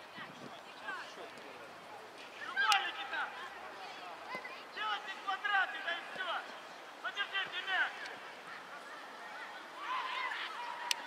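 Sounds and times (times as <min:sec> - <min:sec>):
children shouting: 0:08.4 - 0:11.0.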